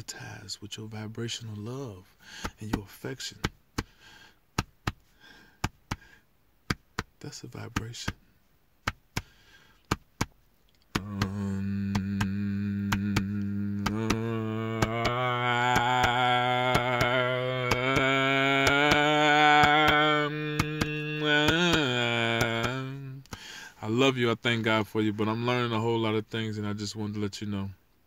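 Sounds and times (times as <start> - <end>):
man chanting a long tone: 11.0 - 23.2.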